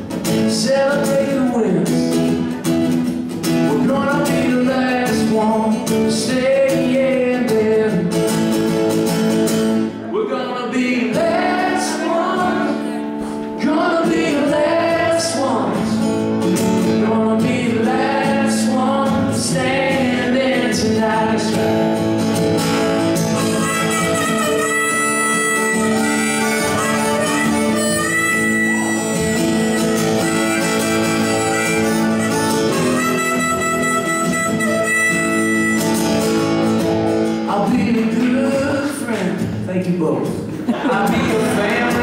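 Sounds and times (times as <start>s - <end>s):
acoustic guitar strumming: 0.0s - 42.0s
harmonica playing held notes: 22.7s - 36.6s.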